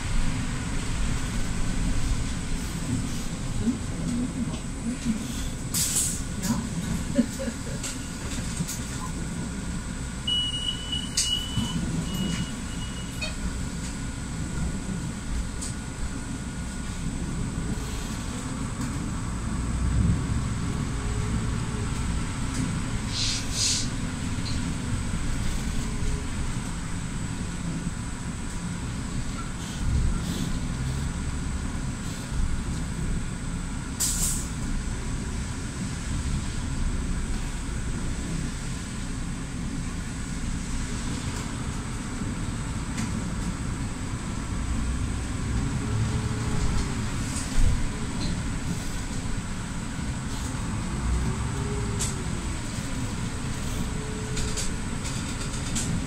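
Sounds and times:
bus engine and road rumble: 0.0 - 56.0.

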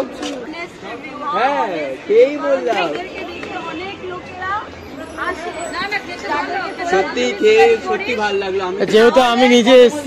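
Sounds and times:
people talking and chattering: 0.0 - 10.0.

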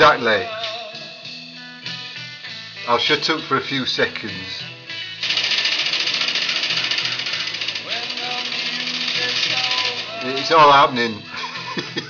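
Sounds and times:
background music: 0.0 - 12.0
rapid sharp rattle: 5.1 - 11.1.

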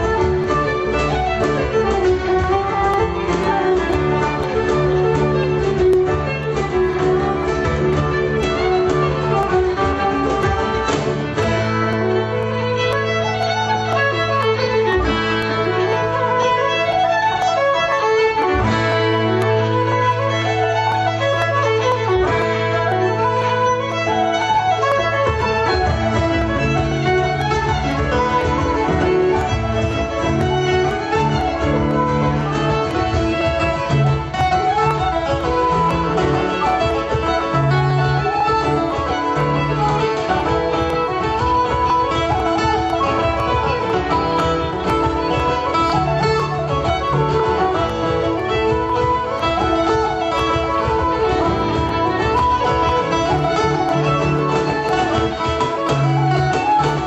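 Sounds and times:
fiddle melody: 0.0 - 57.0
strummed guitar: 0.0 - 57.0.

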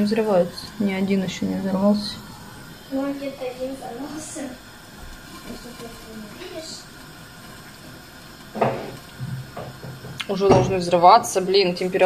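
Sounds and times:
indistinct voices: 0.0 - 7.0
syrup boiling with soft hiss: 0.0 - 12.0.

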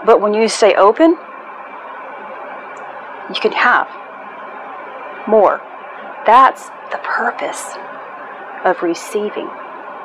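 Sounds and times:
woman's voice: 0.0 - 1.2, 3.3 - 3.9, 5.2 - 5.6, 6.2 - 7.8, 8.6 - 9.6
faint hum: 0.0 - 10.0.

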